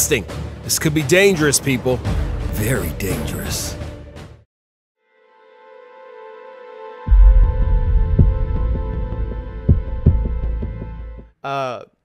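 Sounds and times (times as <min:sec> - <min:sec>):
low rumble: 0:07.1 - 0:10.8
deep boom: 0:07.1 - 0:10.9
low thuds: 0:07.1 - 0:11.0.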